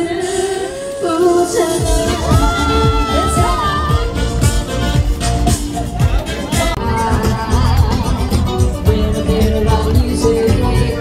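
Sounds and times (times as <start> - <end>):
person singing into microphone: 0.0 - 4.5, 6.1 - 11.0
pop backing music: 0.0 - 11.0
bass-heavy beat: 1.6 - 11.0.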